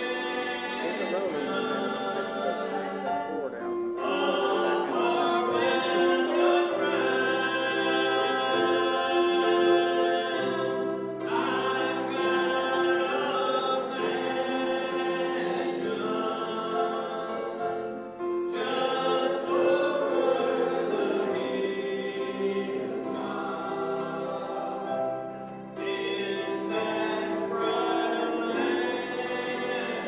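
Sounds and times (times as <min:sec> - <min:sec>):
gospel trio singing in harmony: 0:00.0 - 0:30.0.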